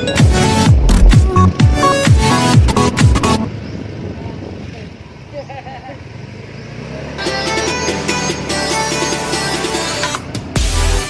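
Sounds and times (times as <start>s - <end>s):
background music: 0.0s - 3.5s, 7.2s - 11.0s
passing traffic: 0.0s - 11.0s.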